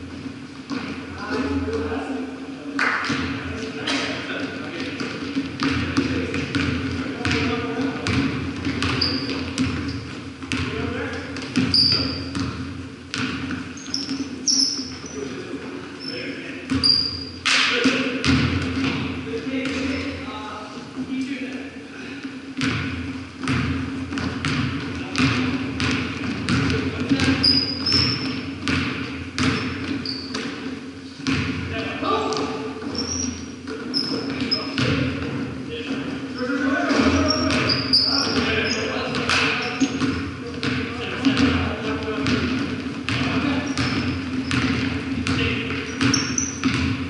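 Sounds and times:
basketball bouncing on hardwood: 4.8 - 15.2, 18.2 - 20.0, 22.6 - 30.6, 31.2 - 31.7, 33.9 - 35.4, 36.9 - 47.0
sneaker squeaks: 4.9 - 17.7, 18.8 - 20.3, 26.5 - 31.5, 32.2 - 35.2, 36.0 - 41.6, 43.1 - 47.0.

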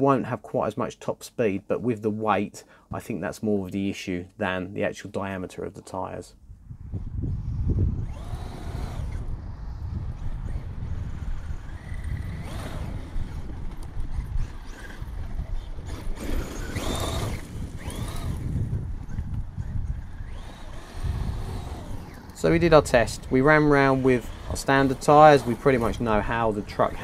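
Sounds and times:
wind on microphone: 6.4 - 27.0
electric motor whining: 6.8 - 27.0.

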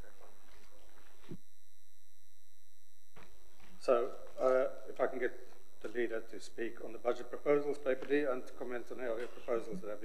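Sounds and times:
faint room noise: 0.0 - 1.6, 2.8 - 10.0.

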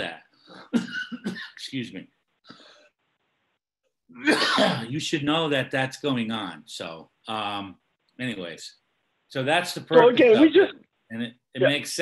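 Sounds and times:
person coughing: 0.6 - 1.6, 4.2 - 4.9
person speaking: 9.7 - 12.0.

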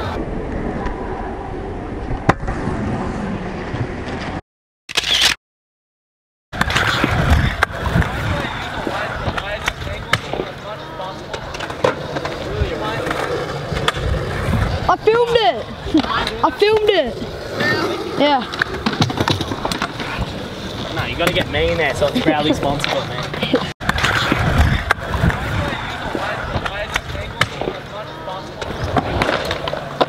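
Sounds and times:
scooter wheels rolling on concrete: 6.6 - 30.0
scooter decks clacking on ground: 17.6 - 22.1.

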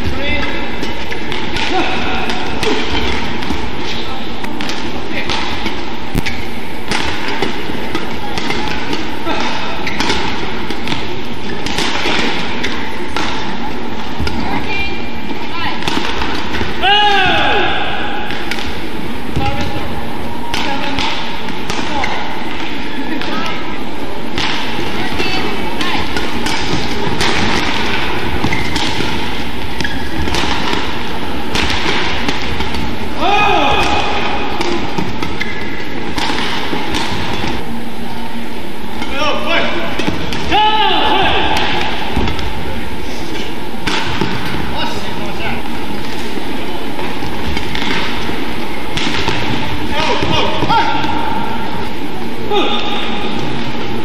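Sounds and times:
crowd voices: 0.0 - 54.0
racket striking shuttlecock: 0.4 - 3.7, 4.4 - 14.4, 15.8 - 16.8, 17.7 - 19.8, 20.5 - 23.6, 24.3 - 37.7, 39.7 - 40.6, 43.4 - 44.7, 46.9 - 51.9
shoes squeaking on court: 6.0 - 11.7, 28.1 - 31.0, 35.0 - 36.0.

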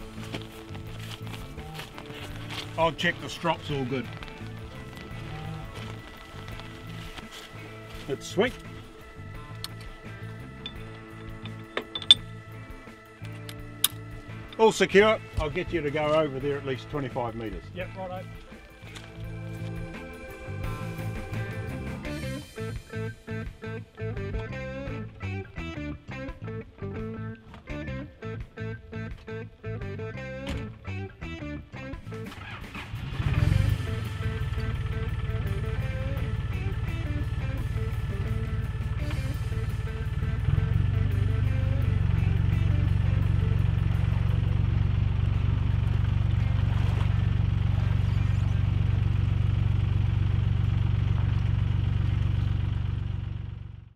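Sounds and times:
tractor engine running: 0.0 - 22.6, 32.0 - 53.9
plucked guitar music: 0.0 - 51.8.

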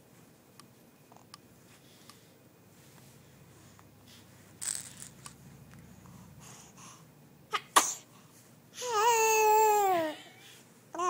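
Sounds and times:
infant breathy bursts: 5.9 - 7.1
infant cooing: 8.8 - 11.0.

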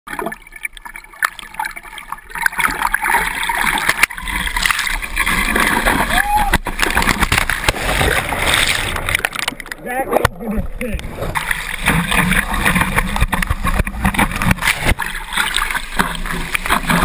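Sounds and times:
whitewater rushing and splashing: 2.6 - 17.0
water knocking on camera: 9.4 - 15.2.

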